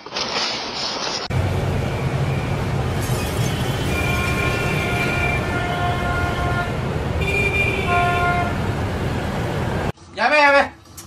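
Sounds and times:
highway road and tyre noise: 0:00.0 - 0:11.0
car horn blasts: 0:03.6 - 0:08.6.

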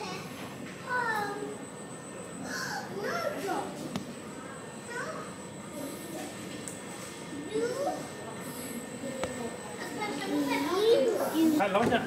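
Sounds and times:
child's voice: 0:00.0 - 0:01.6, 0:02.8 - 0:03.9, 0:04.9 - 0:06.4, 0:07.3 - 0:08.2, 0:09.8 - 0:11.6
steady background hum: 0:00.0 - 0:12.0
voices in a room: 0:00.0 - 0:12.0.

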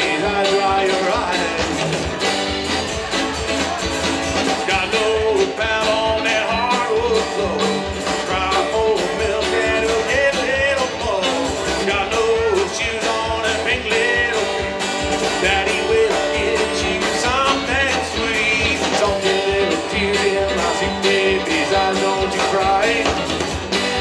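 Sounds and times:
acoustic guitar: 0:00.0 - 0:24.0
drums: 0:00.0 - 0:24.0
electric guitar: 0:00.0 - 0:24.0
upright bass: 0:00.0 - 0:24.0.

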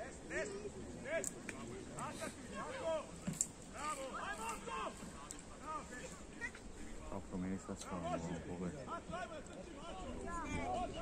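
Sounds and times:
distant shouting voices: 0:00.0 - 0:06.7.

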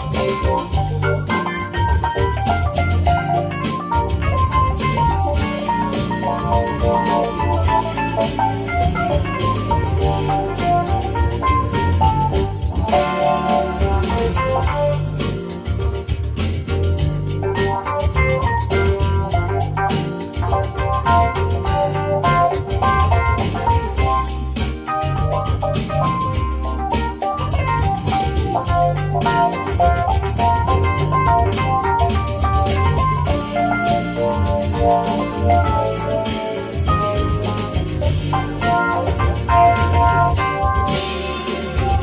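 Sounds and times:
bass line and beat: 0:00.0 - 0:42.0
organ-like keyboard chords: 0:00.0 - 0:42.0.

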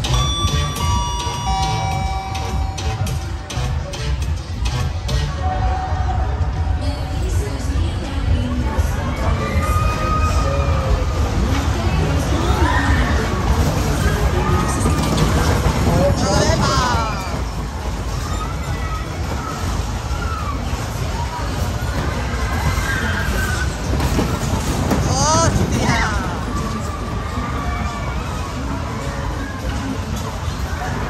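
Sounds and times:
fairground music: 0:00.0 - 0:05.9
fairground music over loudspeakers: 0:00.0 - 0:31.0
people's voices: 0:00.0 - 0:31.0.

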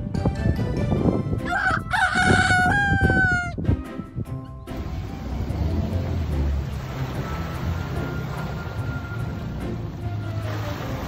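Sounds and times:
magpie mimicking rooster crow: 0:01.4 - 0:03.6.

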